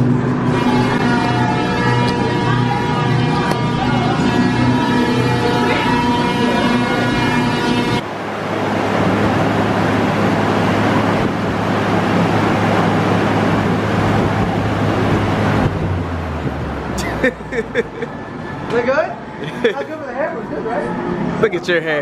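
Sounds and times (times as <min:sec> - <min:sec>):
loud rush of wind from blowers: 0:07.2 - 0:18.5.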